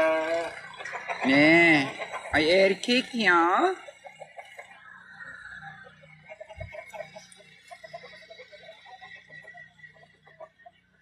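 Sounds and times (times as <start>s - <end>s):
chickens clucking softly: 0.0s - 10.8s.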